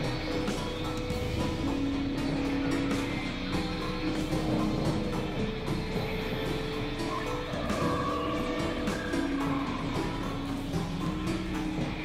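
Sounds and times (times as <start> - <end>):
synthesizer drone music: 0.0 - 12.0.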